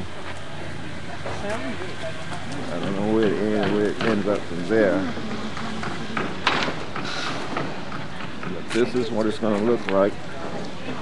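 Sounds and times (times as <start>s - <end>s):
city street noise: 0.0s - 11.0s.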